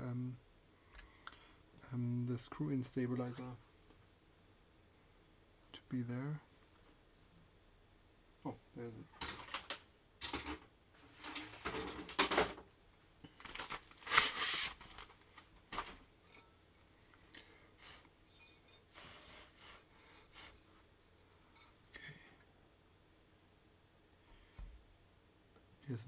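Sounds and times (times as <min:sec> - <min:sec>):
keyboard parts clicking and clattering: 0:09.2 - 0:12.6.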